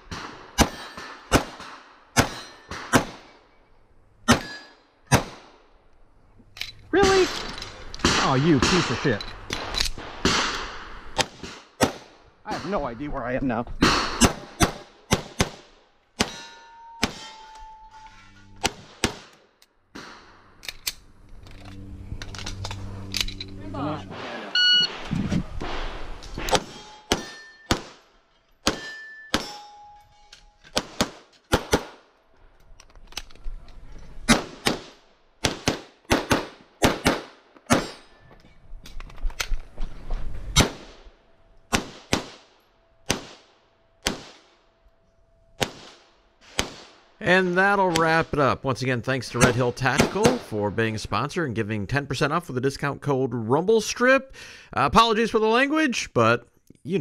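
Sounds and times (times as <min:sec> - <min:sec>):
metallic ring of steel targets: 0:00.1 - 0:01.4, 0:02.2 - 0:03.7, 0:04.3 - 0:04.9, 0:16.2 - 0:18.8, 0:26.4 - 0:27.8, 0:28.6 - 0:30.6, 0:37.8 - 0:38.5
pistol shots: 0:00.1 - 0:03.3, 0:04.2 - 0:05.6, 0:07.0 - 0:12.7, 0:13.8 - 0:16.4, 0:18.6 - 0:20.4, 0:25.6 - 0:29.6, 0:30.7 - 0:32.1, 0:34.3 - 0:38.0, 0:41.7 - 0:44.5, 0:45.6 - 0:47.1, 0:49.4 - 0:50.5.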